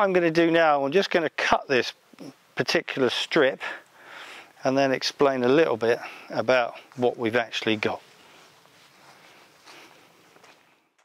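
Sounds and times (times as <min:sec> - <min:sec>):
footsteps on grass: 0:06.7 - 0:11.0.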